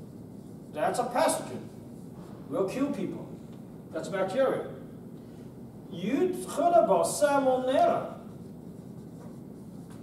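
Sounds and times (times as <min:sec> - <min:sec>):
marker strokes on whiteboard: 0:00.0 - 0:02.3, 0:07.8 - 0:10.0
low room noise: 0:00.0 - 0:10.0.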